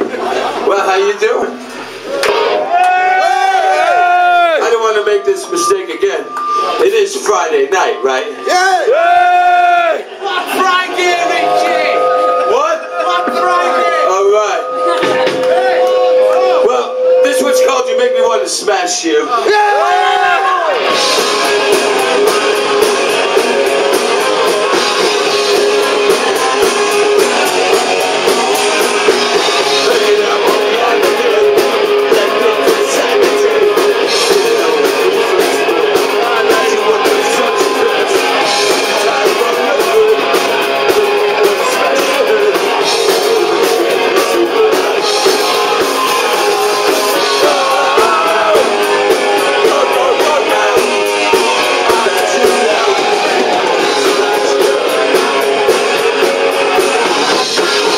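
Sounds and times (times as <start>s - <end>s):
punk rock band playing live: 0.0s - 57.9s
drums and cymbals: 3.3s - 57.9s
distorted electric guitar: 3.9s - 57.9s.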